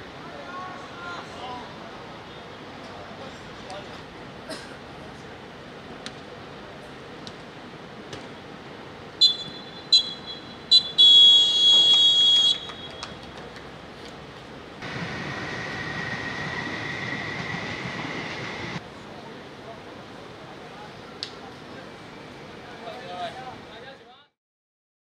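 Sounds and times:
referee's whistle blasts: 9.2 - 13.0.

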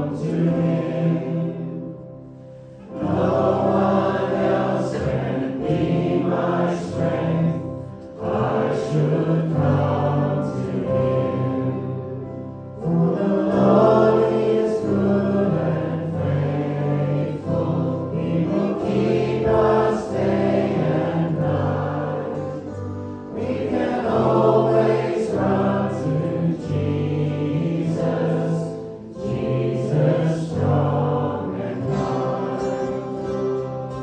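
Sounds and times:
congregation singing a hymn: 0.0 - 34.0.

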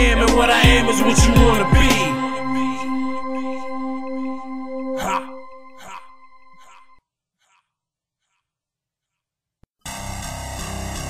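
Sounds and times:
sharp sound repeating in echoes: 0.0 - 6.6
sustained synth chord: 0.0 - 6.6.

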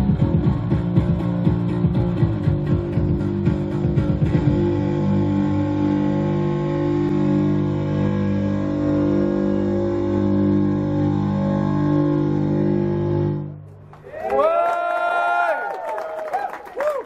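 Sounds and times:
live band with bass and synthesizer: 0.0 - 14.0
sustained droning chord: 0.0 - 14.0.

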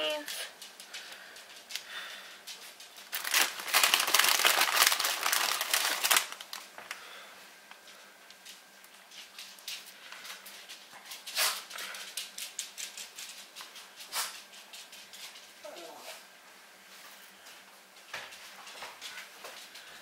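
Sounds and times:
soft rustles and light ticks: 0.3 - 3.1, 7.6 - 20.0
plastic packaging crinkling: 2.8 - 7.1.

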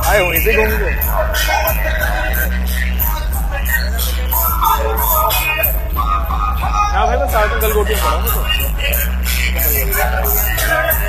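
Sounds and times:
song with vocals and heavy bass: 0.0 - 11.0.

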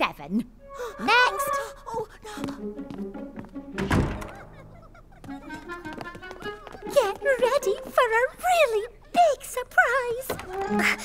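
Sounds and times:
light cartoon music: 0.6 - 9.0, 9.8 - 11.0.

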